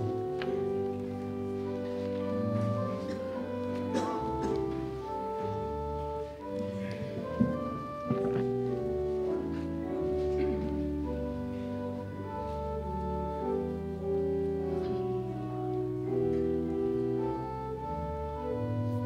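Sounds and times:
organ playing slow chords: 0.0s - 19.0s.

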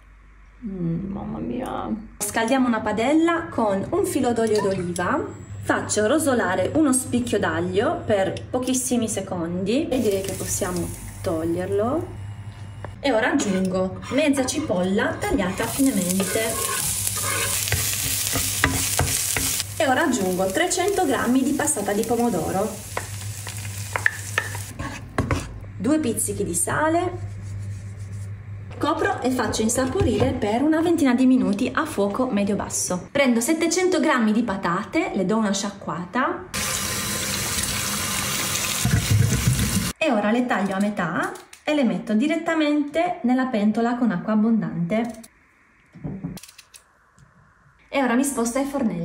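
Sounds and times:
sauce sizzling in a hot pan: 15.6s - 24.7s.

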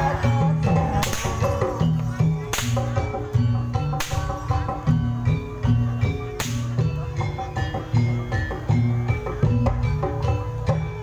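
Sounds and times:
whip cracking: 1.0s - 1.7s, 2.4s - 3.1s, 3.9s - 4.5s, 6.4s - 6.8s.

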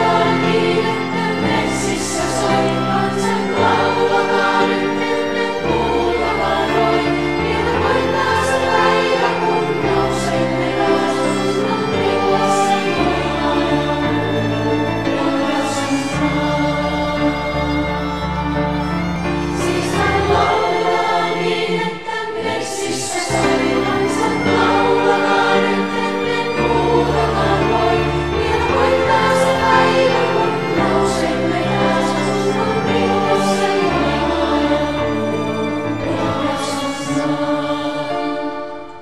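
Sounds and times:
choir singing: 0.0s - 39.0s.

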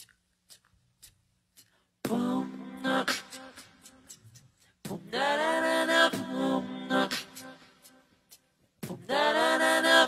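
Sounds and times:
a cappella singing: 2.0s - 10.0s.

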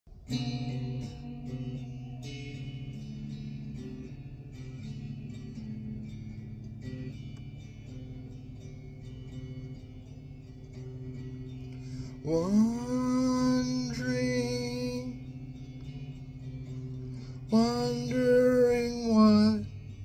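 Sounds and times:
electric guitar chords ringing: 0.1s - 20.0s.

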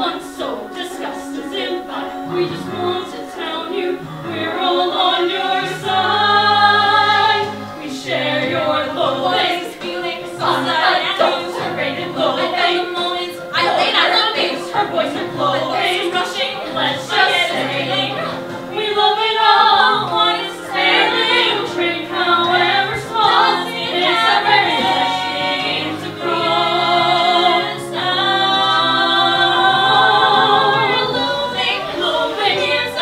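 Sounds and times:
ensemble singing a sustained chord: 0.0s - 15.8s
group singing show tune: 0.0s - 33.0s.

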